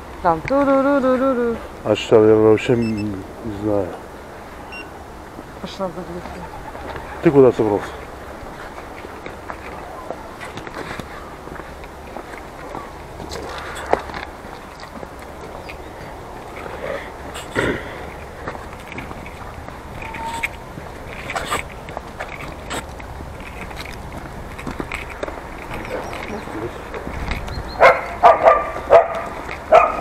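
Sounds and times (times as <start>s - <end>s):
footsteps on asphalt: 5.2s - 30.0s.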